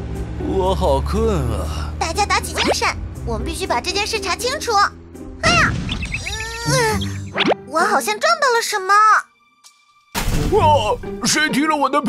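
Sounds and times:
background music: 0.0 - 12.0
drawn-out wordless voice: 0.4 - 2.6
cartoon whoosh: 5.4 - 7.6
quick rising-and-falling call: 5.8 - 7.4.

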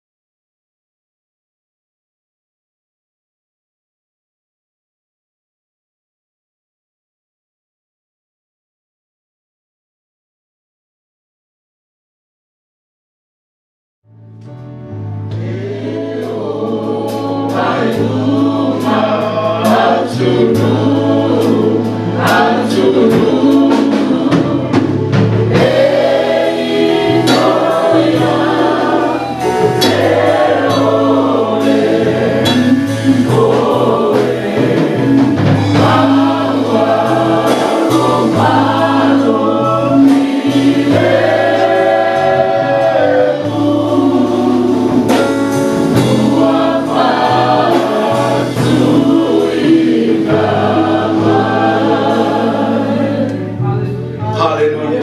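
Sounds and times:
keyboard accompaniment: 14.1 - 55.0
congregation singing a hymn: 14.9 - 55.0.

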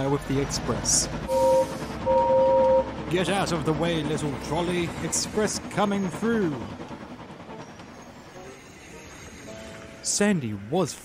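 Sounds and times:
steam train passing: 0.0 - 11.0.

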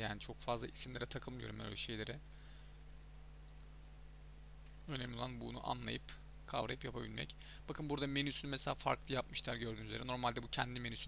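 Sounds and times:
low electrical hum and hiss: 0.0 - 11.0
faint click: 3.4 - 4.0.

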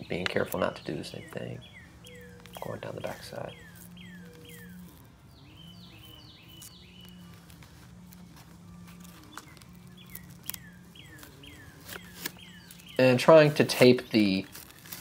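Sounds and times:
songbird chirping: 0.0 - 15.0
paper and tape clicks: 2.0 - 5.2, 5.9 - 13.0, 13.8 - 15.0.

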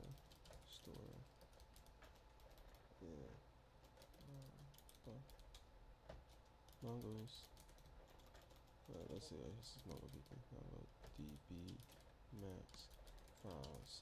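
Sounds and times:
typing on computer keyboard: 0.0 - 2.9, 3.8 - 10.4, 11.0 - 14.0.

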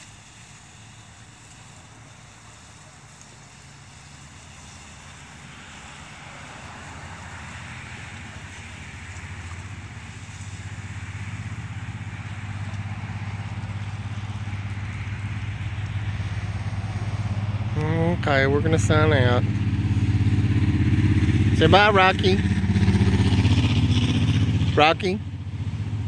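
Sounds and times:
lawn sprinkler spray hissing: 0.0 - 26.0
low engine drone: 0.0 - 26.0.

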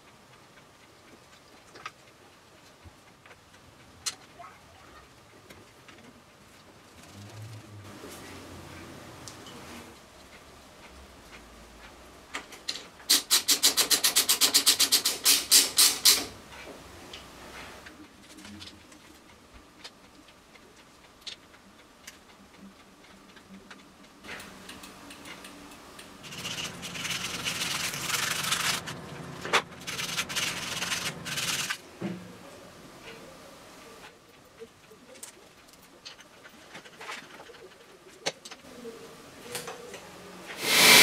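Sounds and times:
rough rubbing and scraping: 26.2 - 31.8, 40.6 - 41.0.

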